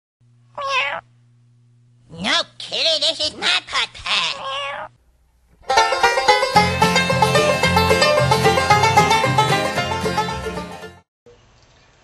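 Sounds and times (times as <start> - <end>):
low steady hum: 0.2 - 6.5
cat meow: 0.6 - 1.0, 4.3 - 5.0.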